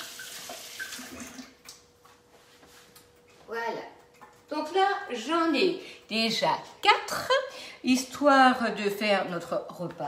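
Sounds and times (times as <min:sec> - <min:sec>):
water running from sink tap: 0:00.0 - 0:01.8.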